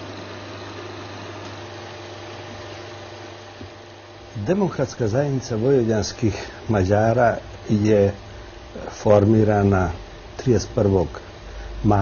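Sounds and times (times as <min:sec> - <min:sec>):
film projector whirring: 0:00.0 - 0:12.0
low hum: 0:04.5 - 0:12.0.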